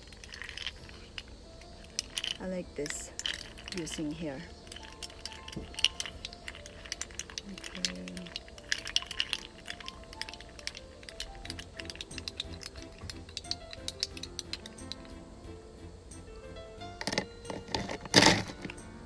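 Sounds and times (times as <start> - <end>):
ice cubes clinking against glass: 0.0 - 15.2, 17.0 - 18.9
slow melodic background music: 0.0 - 19.0.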